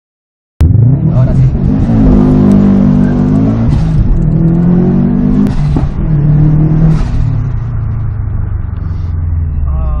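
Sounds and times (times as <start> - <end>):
car engine revving: 0.6 - 10.0.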